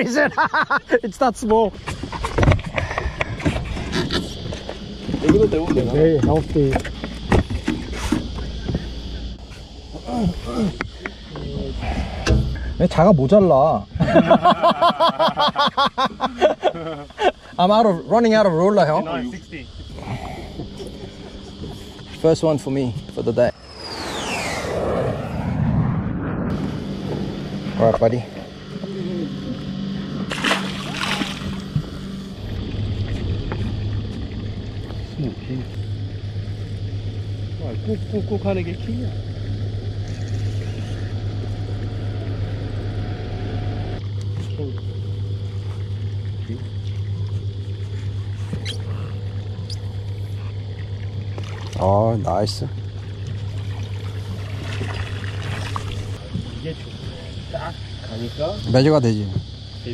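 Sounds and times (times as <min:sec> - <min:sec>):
steady low hum: 0:00.0 - 0:59.9
steady low rumble: 0:00.6 - 0:59.9
fish splashing into water: 0:30.3 - 0:32.1, 0:50.9 - 0:51.8, 0:53.0 - 0:56.2.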